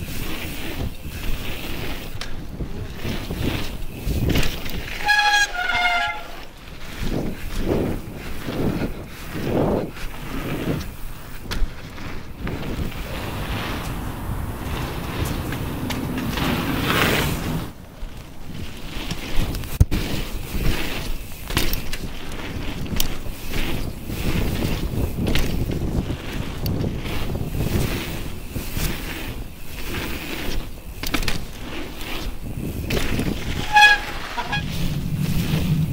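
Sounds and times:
bike tyres rolling on dirt: 0:00.0 - 0:05.4, 0:06.5 - 0:35.9
wind buffeting microphone: 0:07.1 - 0:19.8, 0:32.3 - 0:35.9
high falling squeal: 0:12.8 - 0:17.9, 0:33.7 - 0:35.9.

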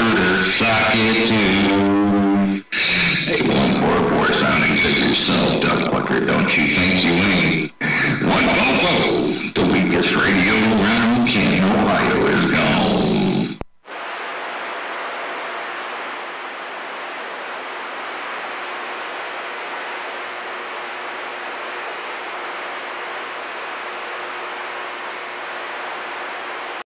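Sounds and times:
radio static hiss: 0:00.0 - 0:26.8
radio transmission: 0:00.0 - 0:26.8.

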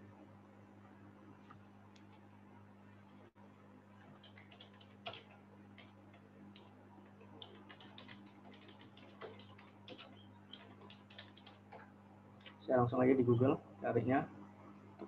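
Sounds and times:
keyboard typing: 0:04.1 - 0:12.6.

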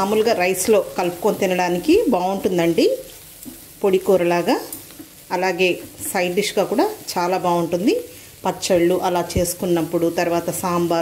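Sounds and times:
woman speaking: 0:00.0 - 0:03.1, 0:03.8 - 0:11.0
food sizzling in a pan: 0:00.0 - 0:11.0
spatula stirring: 0:04.6 - 0:07.2.

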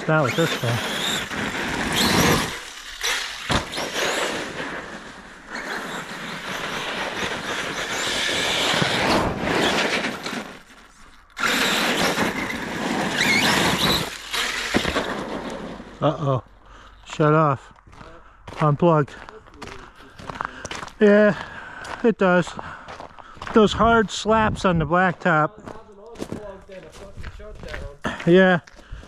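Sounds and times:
tyres squealing on ice: 0:00.0 - 0:04.9, 0:05.5 - 0:10.6, 0:11.4 - 0:15.2
toy truck electric motor whining: 0:00.0 - 0:10.7, 0:11.3 - 0:16.0.

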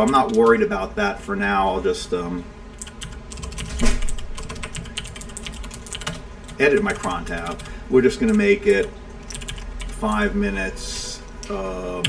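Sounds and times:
computer keyboard typing: 0:02.7 - 0:10.2.

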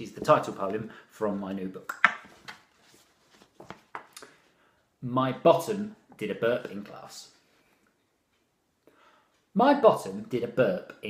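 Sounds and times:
book pages flipping: 0:01.9 - 0:04.2.

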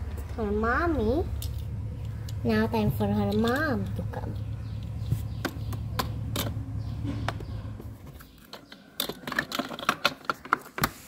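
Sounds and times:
plastic toy pieces clicking: 0:08.2 - 0:11.0.

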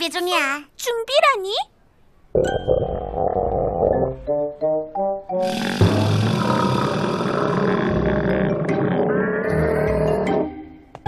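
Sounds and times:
cartoon stomach growl: 0:02.4 - 0:04.3, 0:05.4 - 0:10.6.

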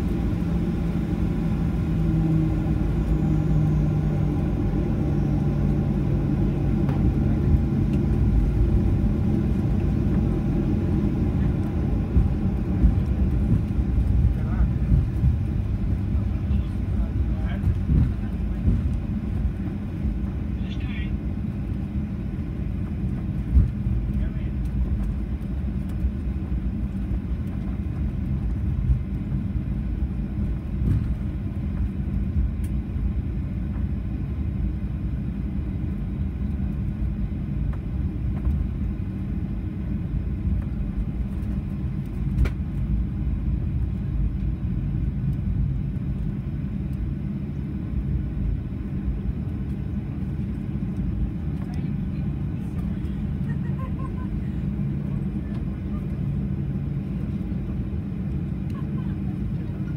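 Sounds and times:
airplane cabin low rumble: 0:00.0 - 0:59.9.

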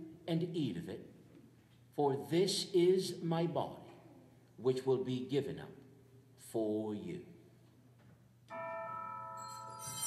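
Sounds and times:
sustained bell tones: 0:08.5 - 0:10.0.

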